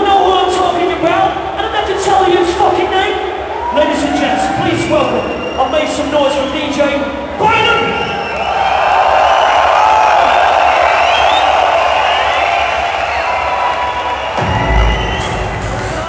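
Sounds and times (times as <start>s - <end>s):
crowd cheering and screaming: 3.3s - 16.0s
deep bass music: 14.4s - 16.0s.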